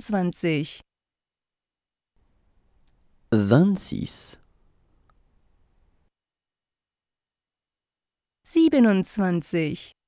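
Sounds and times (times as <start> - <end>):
person speaking: 3.3 - 4.5.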